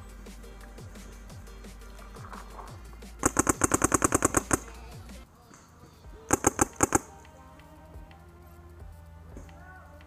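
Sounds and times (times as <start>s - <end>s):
paintball marker firing: 3.2s - 4.7s, 6.3s - 7.2s.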